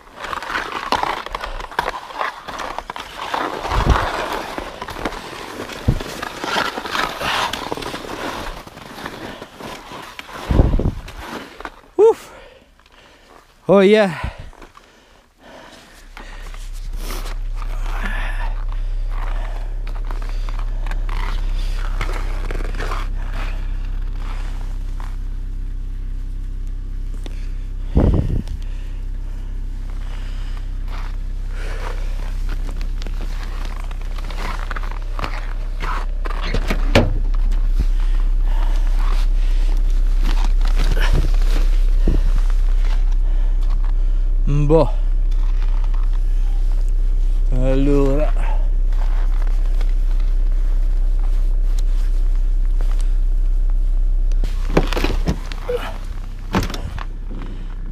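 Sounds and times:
footsteps crunching on snow: 0:00.0 - 0:11.9, 0:15.4 - 0:57.8
steady low hum: 0:00.0 - 0:57.9
car door knocks and clunks: 0:36.6 - 0:37.2.

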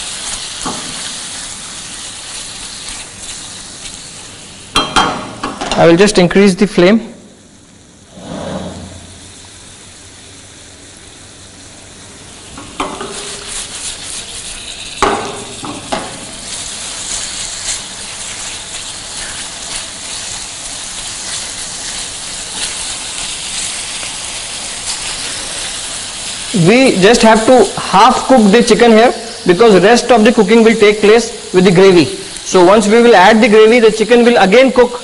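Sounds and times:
chicken sizzling in a pan: 0:00.0 - 0:06.0, 0:07.3 - 0:35.0.

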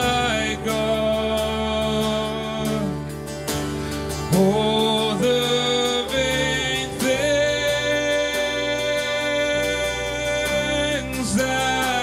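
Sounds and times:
man singing into a microphone: 0:00.0 - 0:03.3, 0:04.1 - 0:12.0
acoustic guitar strumming: 0:00.0 - 0:12.0.

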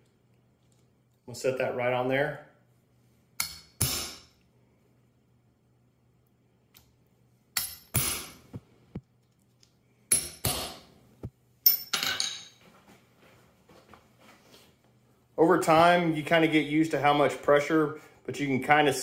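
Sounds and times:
hammer striking metal: 0:07.6 - 0:08.4.

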